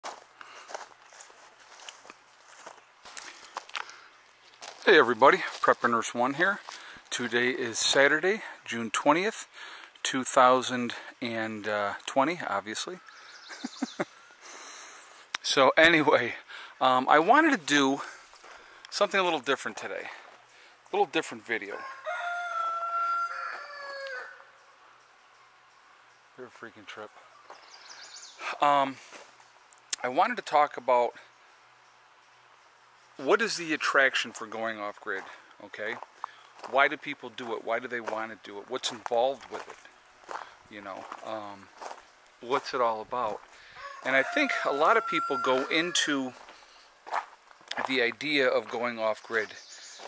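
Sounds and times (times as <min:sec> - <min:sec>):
soft footsteps: 0:00.0 - 0:07.1, 0:18.0 - 0:20.5, 0:27.4 - 0:27.8, 0:29.0 - 0:29.4, 0:35.0 - 0:44.1, 0:45.4 - 0:49.6
rooster crowing: 0:21.7 - 0:24.6, 0:43.7 - 0:46.1.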